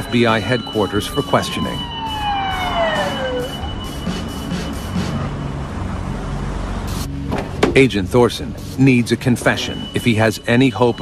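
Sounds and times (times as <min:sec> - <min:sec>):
police siren sliding down: 0:00.0 - 0:05.4.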